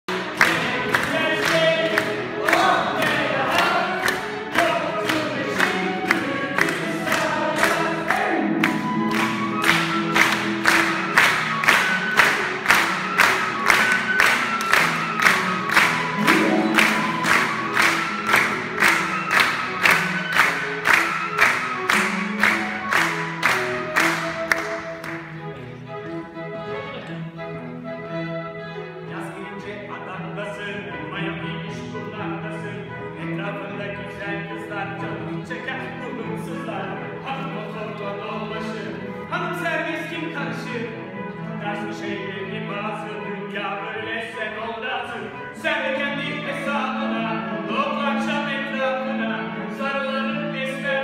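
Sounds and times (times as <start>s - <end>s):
audience clapping along: 0.0s - 25.9s
man singing: 0.1s - 8.7s, 29.1s - 51.0s
chamber ensemble playing: 0.1s - 51.0s.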